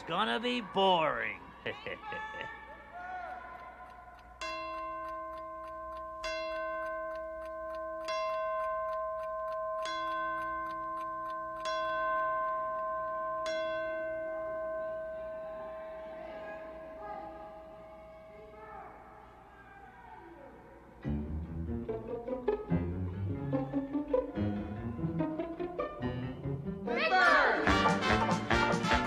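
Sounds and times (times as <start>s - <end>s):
clock bell striking: 4.2s - 17.3s.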